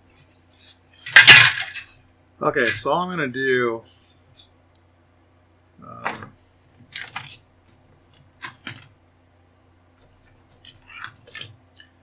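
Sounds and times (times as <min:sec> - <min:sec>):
plastic parts clattering: 0:00.6 - 0:02.0, 0:06.1 - 0:09.0, 0:10.1 - 0:12.0.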